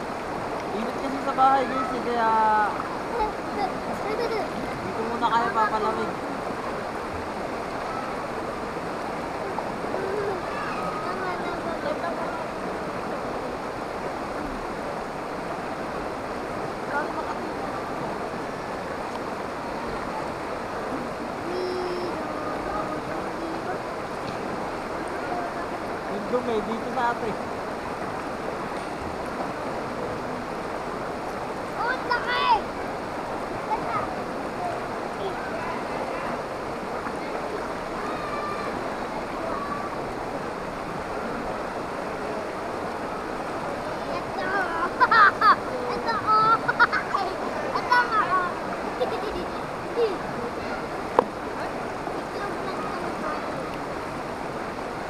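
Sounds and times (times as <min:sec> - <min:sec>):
river water rushing over rocks: 0:00.0 - 0:55.0.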